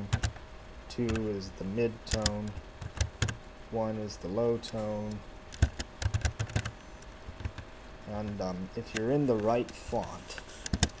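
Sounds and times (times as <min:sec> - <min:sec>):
laptop keyboard typing: 0:00.0 - 0:00.4, 0:01.1 - 0:01.3, 0:02.1 - 0:03.4, 0:05.6 - 0:06.8, 0:07.4 - 0:07.6, 0:10.6 - 0:11.0.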